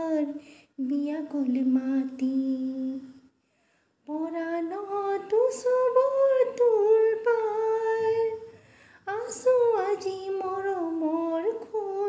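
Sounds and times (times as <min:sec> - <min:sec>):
woman singing unaccompanied: 0:00.0 - 0:03.3, 0:04.0 - 0:12.0.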